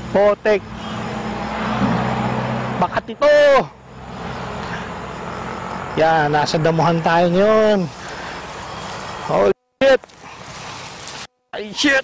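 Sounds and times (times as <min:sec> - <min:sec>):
road traffic with engine hum: 0:00.0 - 0:11.4.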